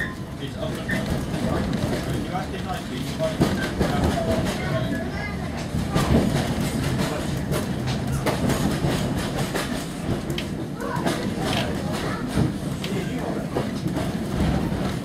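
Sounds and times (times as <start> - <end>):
train wheels rumbling on track: 0.0 - 15.0
wheels clicking over rail joints: 0.1 - 15.0.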